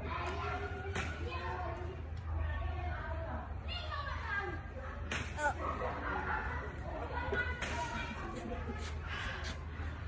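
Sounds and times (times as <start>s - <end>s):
child-like voices talking: 0.0s - 10.0s.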